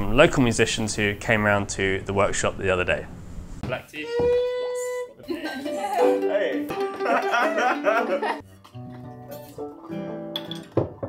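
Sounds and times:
acoustic guitar folk tune: 4.5s - 11.0s.

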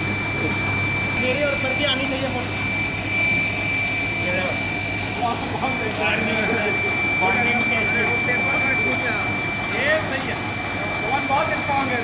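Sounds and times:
sealing machine whirring and whining: 0.0s - 12.0s.

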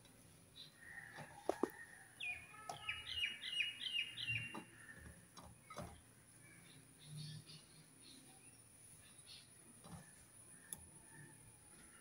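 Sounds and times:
bird chirping: 0.5s - 12.0s.

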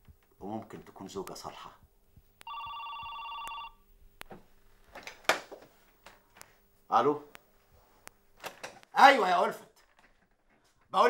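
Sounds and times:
telephone ringing: 2.4s - 3.9s.

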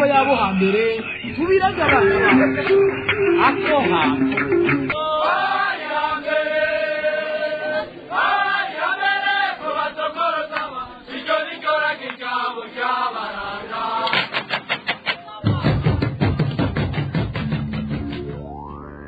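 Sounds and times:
chanted singing: 0.7s - 14.1s.

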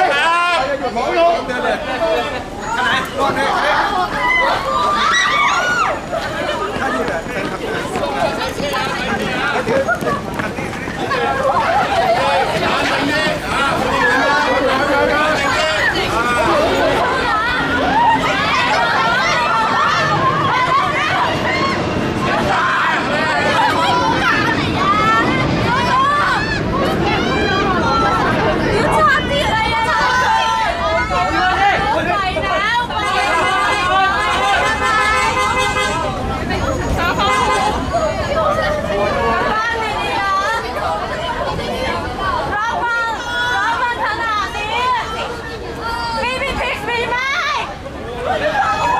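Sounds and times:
crowd chattering and calling out: 0.0s - 48.9s.

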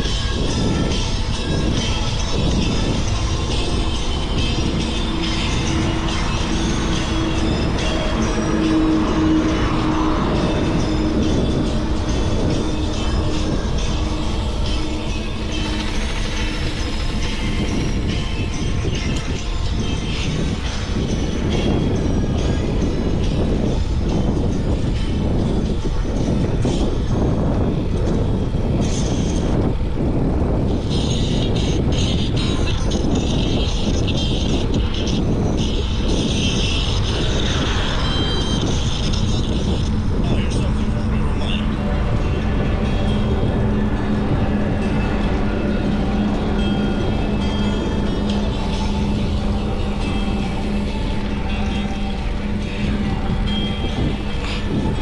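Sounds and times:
steady low rumble: 0.0s - 55.0s
wind buffeting microphone: 0.0s - 55.0s.

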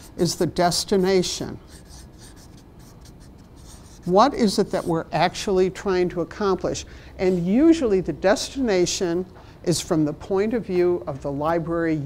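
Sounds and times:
marker scratching on paper: 0.0s - 5.1s.

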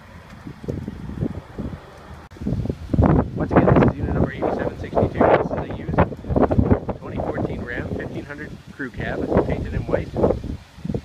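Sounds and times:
microphone handling rumble: 0.0s - 11.0s
wind buffeting microphone: 0.0s - 11.0s.

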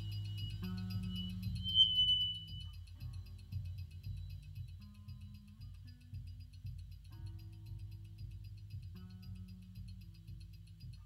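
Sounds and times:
high ringing tone: 0.0s - 5.2s
held low bass notes: 0.0s - 11.0s.

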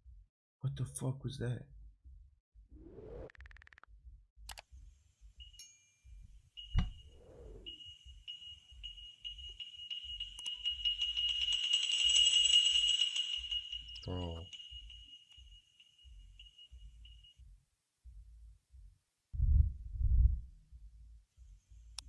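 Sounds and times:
high steady ringing tone: 5.3s - 17.5s.

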